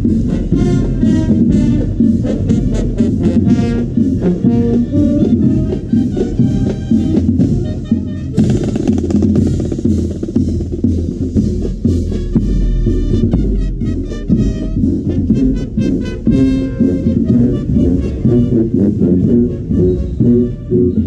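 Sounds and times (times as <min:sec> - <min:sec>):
brass and saxophones playing: 0:00.0 - 0:10.5, 0:11.4 - 0:21.0
fast dense drumming: 0:00.0 - 0:20.8
bass and snare drums: 0:00.0 - 0:21.0.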